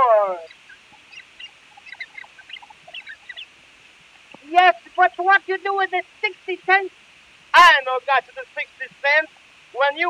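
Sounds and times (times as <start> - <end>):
record surface hiss: 0.0 - 10.0
imitated monkey squeaks and chirps: 0.4 - 3.5.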